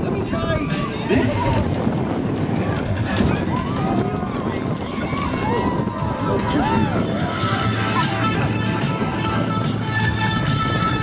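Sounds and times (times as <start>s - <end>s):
roller coaster rushing rumble: 0.0s - 11.0s
riders whooping and shouting: 3.0s - 9.4s.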